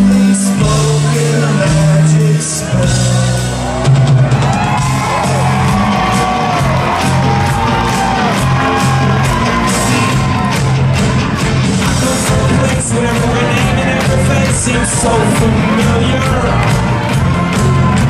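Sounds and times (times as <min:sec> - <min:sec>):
live rock band playing: 0:00.0 - 0:18.0
crowd whooping: 0:02.6 - 0:12.0, 0:12.6 - 0:18.0.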